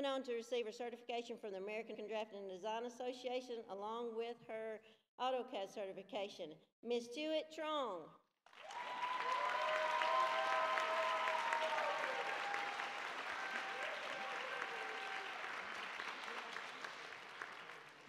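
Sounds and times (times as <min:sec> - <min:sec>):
audience applauding: 0:08.5 - 0:18.0
crowd cheering: 0:08.5 - 0:18.0.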